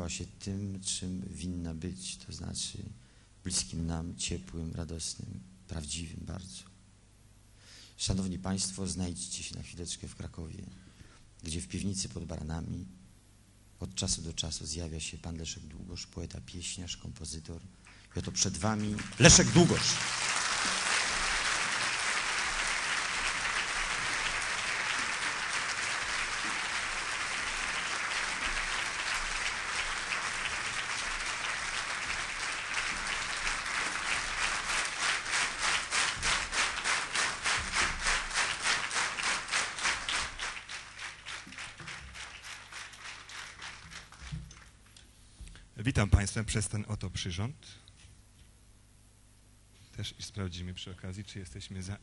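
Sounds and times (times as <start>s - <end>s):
rhythmic clapping in unison: 18.5s - 44.8s
audience applauding: 18.6s - 44.7s.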